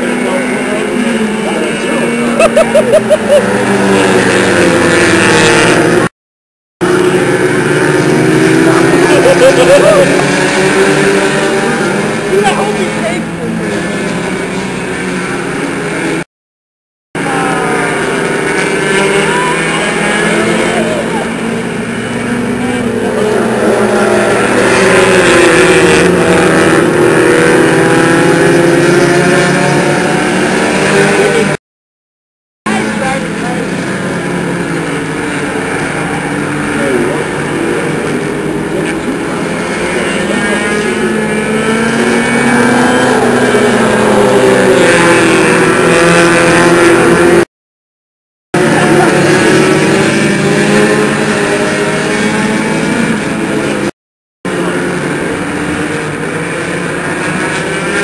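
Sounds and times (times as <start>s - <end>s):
race car engines passing: 0.0s - 6.1s, 6.8s - 16.3s, 17.2s - 31.6s, 32.7s - 47.5s, 48.6s - 53.9s, 54.5s - 58.0s.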